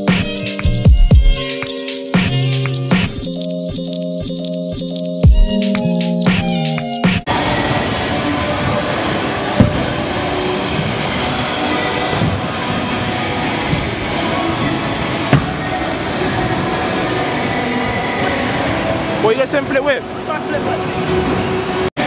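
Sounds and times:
background music: 0:00.0 - 0:21.9.

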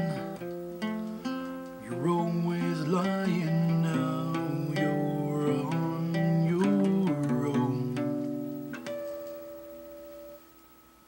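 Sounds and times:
acoustic guitar chord ringing: 0:00.0 - 0:11.0
person singing: 0:01.8 - 0:09.0.

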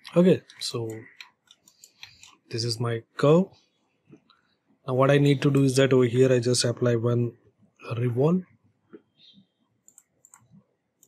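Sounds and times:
faint computer mouse clicks: 0:09.8 - 0:10.6.

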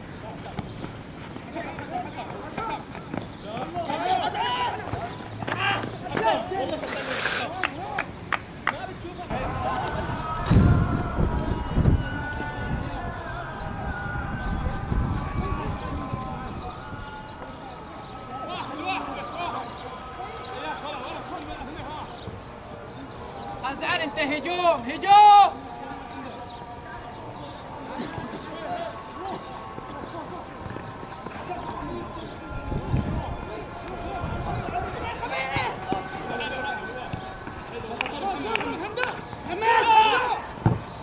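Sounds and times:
distant voices calling: 0:00.0 - 0:41.0
people shouting in the distance: 0:09.3 - 0:40.8.

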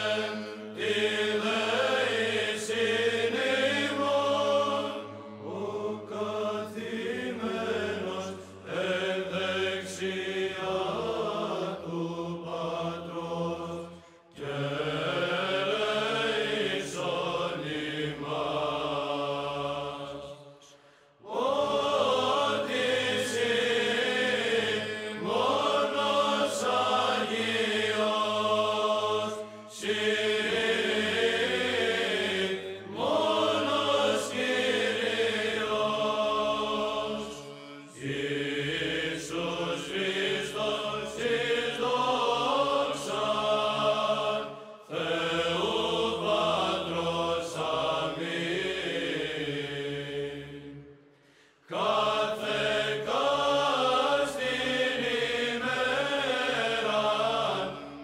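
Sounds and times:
slow vocal chanting: 0:00.0 - 0:58.0.

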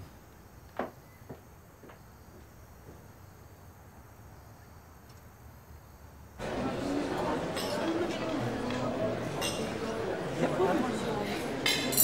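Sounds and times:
murmur of diners chatting: 0:06.4 - 0:12.0.

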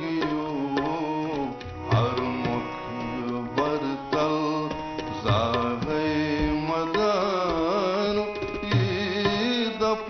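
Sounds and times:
man singing into microphone: 0:00.0 - 0:10.0
tabla beats: 0:00.0 - 0:10.0.

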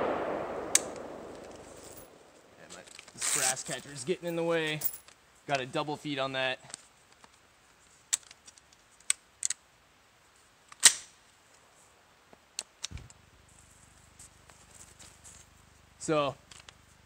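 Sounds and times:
metallic clicks of rifle action: 0:08.1 - 0:09.6, 0:10.7 - 0:11.1.

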